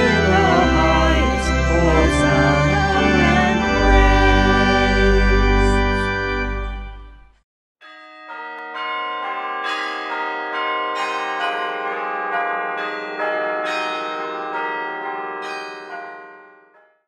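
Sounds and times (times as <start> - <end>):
church bells ringing: 0.0 - 7.1, 7.8 - 16.8.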